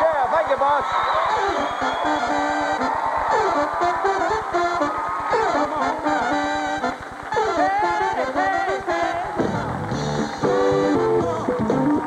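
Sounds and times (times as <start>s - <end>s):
band playing upbeat music: 1.3s - 12.0s.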